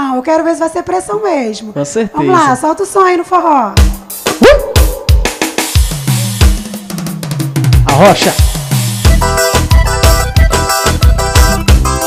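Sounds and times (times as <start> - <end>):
drum beat kick and snare: 3.8 - 12.0
low bass notes: 7.8 - 12.0.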